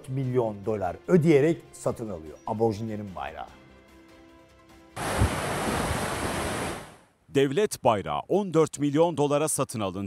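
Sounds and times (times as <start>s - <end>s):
faint background music: 0.0s - 4.8s
wind buffeting microphone: 5.0s - 6.9s
rush of wind: 5.0s - 7.0s
sea surf: 5.0s - 7.0s.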